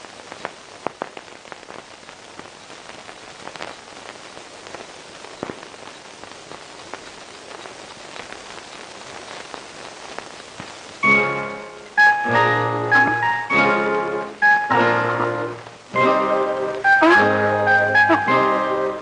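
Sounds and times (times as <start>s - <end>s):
single raindrops: 0.0s - 19.0s
steady rain hiss: 0.0s - 19.0s.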